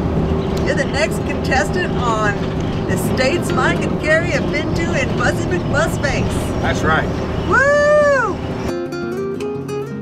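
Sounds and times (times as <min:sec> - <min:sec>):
acoustic guitar music: 0:00.0 - 0:10.0
bus hum: 0:00.0 - 0:10.0.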